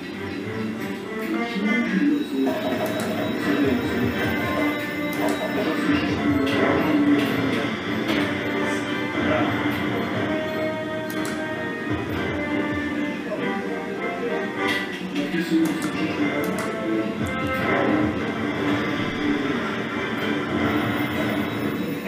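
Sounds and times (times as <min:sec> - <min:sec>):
slot machine music: 0:00.0 - 0:22.0.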